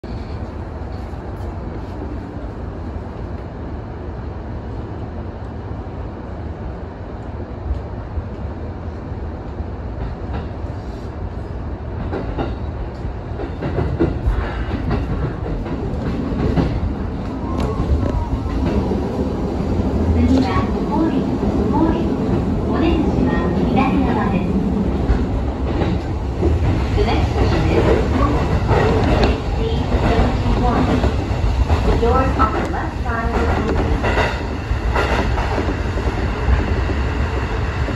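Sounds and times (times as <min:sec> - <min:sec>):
train wheels rumbling: 0:07.7 - 0:37.9.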